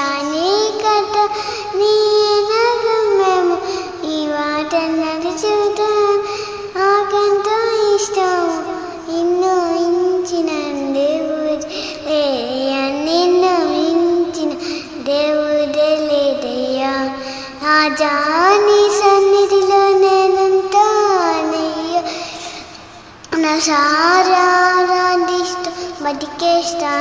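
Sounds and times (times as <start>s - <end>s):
girl singing: 0.0s - 27.0s
girl breathing: 1.3s - 1.8s, 3.6s - 4.0s, 6.2s - 6.8s, 11.7s - 12.1s, 14.5s - 15.0s, 17.2s - 17.6s, 22.0s - 23.2s, 25.6s - 26.0s.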